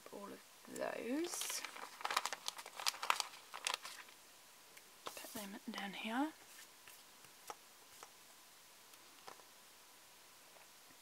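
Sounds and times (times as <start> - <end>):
paper sheets rustling and crinkling: 1.1 - 4.2, 5.0 - 8.2.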